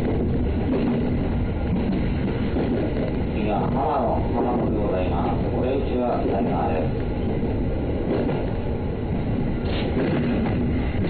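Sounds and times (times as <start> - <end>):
train wheels rumbling on rail: 0.0 - 11.0.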